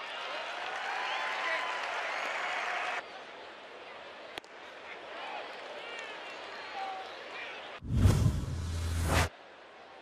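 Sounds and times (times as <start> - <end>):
crowd cheering and applauding: 0.0 - 3.0
crowd shouts: 0.0 - 3.0.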